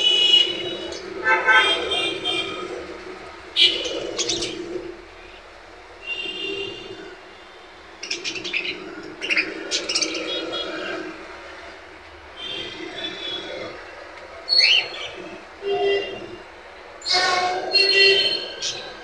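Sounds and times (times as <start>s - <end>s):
budgerigars chirping: 14.5s - 15.1s.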